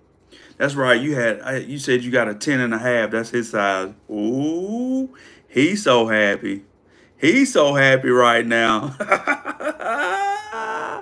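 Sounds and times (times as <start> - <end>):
man laughing: 8.7 - 11.0.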